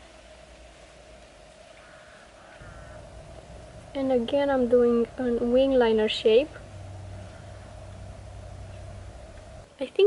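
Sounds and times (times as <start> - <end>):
faint steady hum: 0.0 - 10.0
faint distant call: 1.0 - 9.8.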